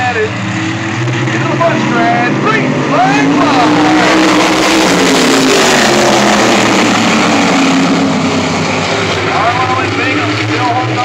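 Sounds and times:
race car engines at full throttle: 0.0 - 11.0.

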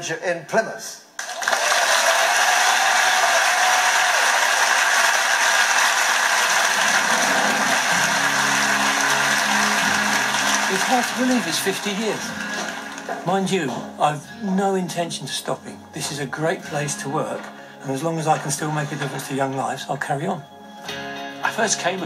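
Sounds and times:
audience applauding: 1.2 - 13.5
low music: 6.3 - 22.0.

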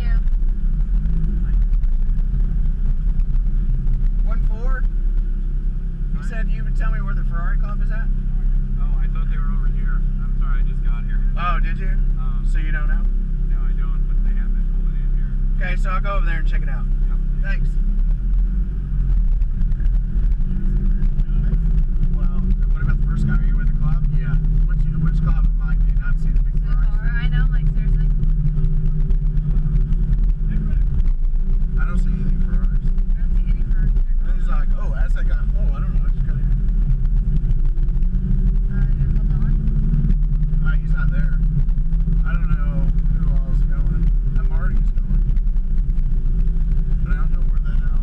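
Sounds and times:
car engine rumbling: 0.0 - 48.0
faint voices: 19.1 - 48.0.

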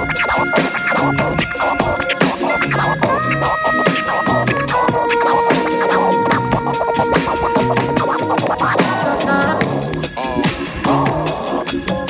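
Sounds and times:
drum beat: 0.0 - 12.0
vinyl record scratching: 0.0 - 12.0.

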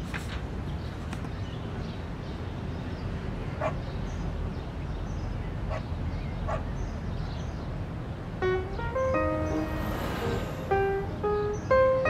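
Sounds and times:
low rumble: 8.9 - 11.4.

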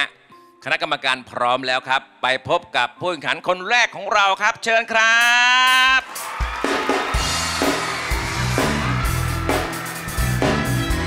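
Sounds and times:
band music with drums and bass: 5.7 - 11.0.

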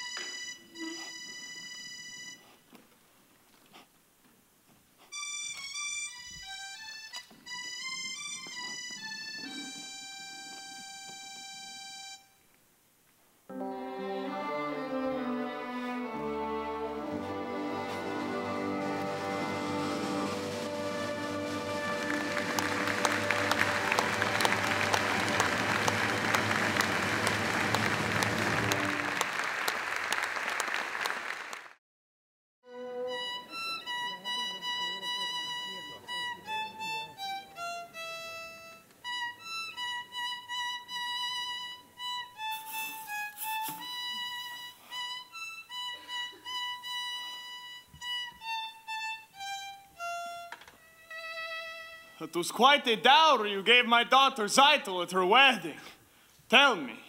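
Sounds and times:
high note on melody instrument: 0.0 - 2.4, 42.5 - 44.7
instrumental music: 0.0 - 2.5, 5.0 - 12.5, 13.5 - 29.4, 32.6 - 53.6
audience applause: 17.3 - 31.8.

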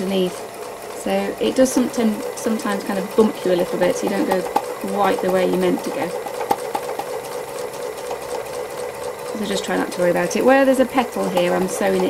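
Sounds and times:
sewing machine stitching: 0.0 - 12.0.

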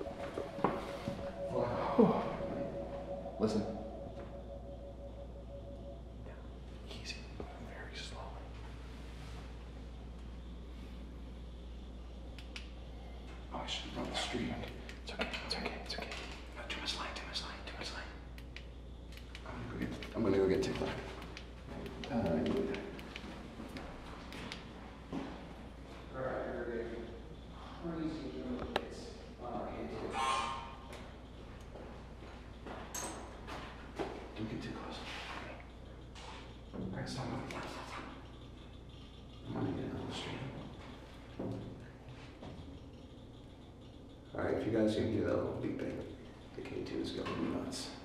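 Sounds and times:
faint electronic beeping: 0.0 - 24.0, 34.4 - 48.0
small clicks: 12.3 - 12.8, 18.3 - 23.3.

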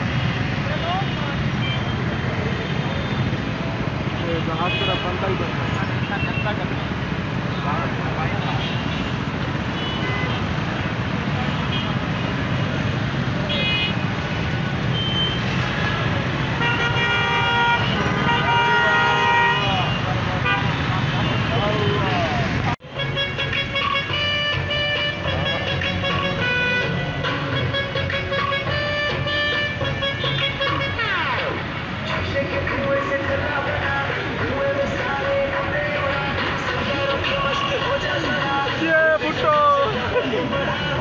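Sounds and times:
car horns honking: 4.0 - 6.8, 8.2 - 31.6
music: 22.8 - 41.0
men's voices in crowd: 32.0 - 41.0.

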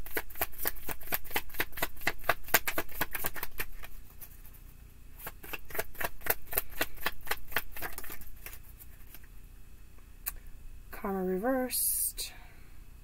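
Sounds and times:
cards being shuffled: 0.0 - 4.6, 5.2 - 9.3.

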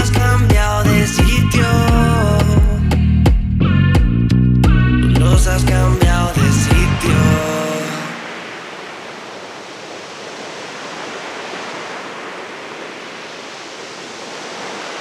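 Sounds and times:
song ending notes: 3.6 - 8.2
waves breaking on beach: 6.0 - 15.0.

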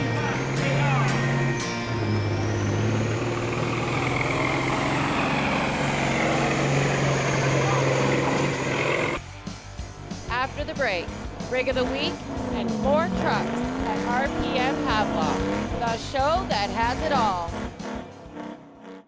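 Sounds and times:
high whine: 0.0 - 9.3
diesel engine working hard: 0.0 - 19.0.

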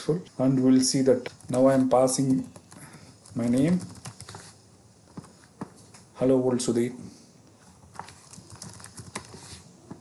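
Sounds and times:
keyboard typing: 1.2 - 4.5, 7.8 - 10.0.

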